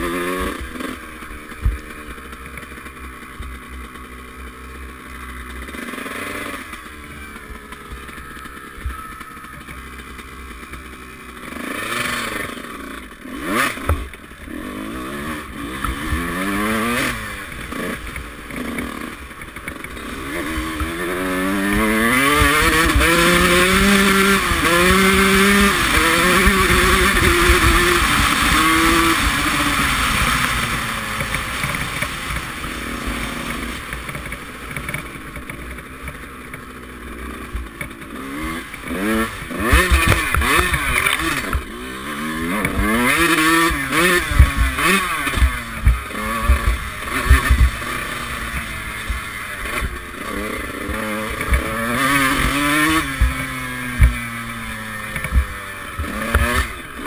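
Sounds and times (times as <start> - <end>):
two-stroke motorcycle engine revving: 0.0 - 57.0.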